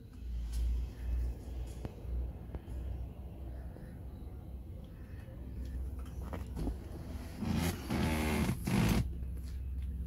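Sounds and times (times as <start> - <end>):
steady low hum: 0.0 - 10.0
vinyl upholstery creaking: 6.6 - 9.2.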